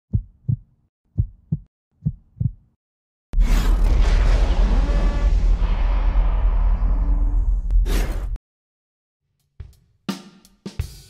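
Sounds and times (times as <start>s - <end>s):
heartbeat thumps: 0.1s - 2.7s
loud low boom: 3.4s - 7.8s.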